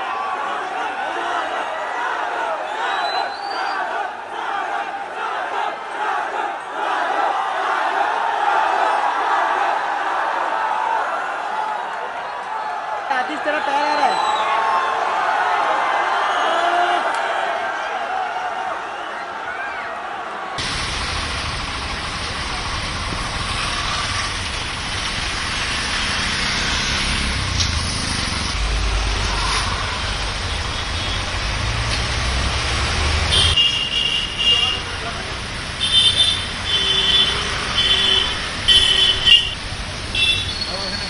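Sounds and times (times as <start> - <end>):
traffic: 0.0 - 14.6, 20.5 - 41.0
indistinct crowd voices: 0.0 - 20.6.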